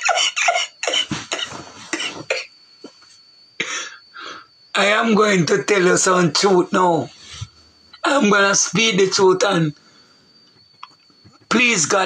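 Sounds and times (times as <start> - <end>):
man coughing: 0.0 - 2.6, 3.6 - 4.0.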